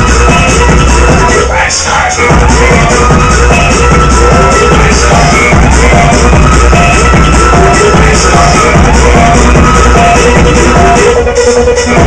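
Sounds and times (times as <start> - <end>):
loud hard trance music: 0.0 - 12.0.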